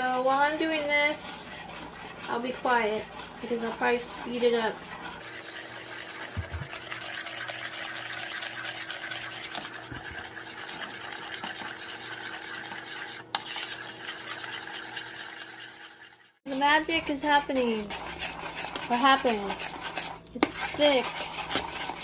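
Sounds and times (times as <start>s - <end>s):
spoon scraping metal saucepan: 0.0s - 22.0s.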